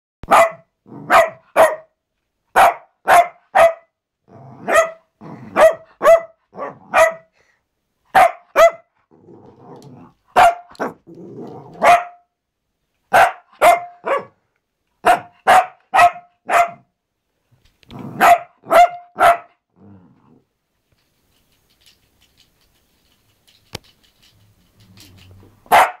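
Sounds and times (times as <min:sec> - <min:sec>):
dog barking high-pitched: 0:00.2 - 0:04.0, 0:04.6 - 0:07.3, 0:08.1 - 0:09.0, 0:10.4 - 0:11.0, 0:11.8 - 0:12.3, 0:13.1 - 0:14.4, 0:15.0 - 0:16.9, 0:18.1 - 0:19.6, 0:25.7 - 0:26.0.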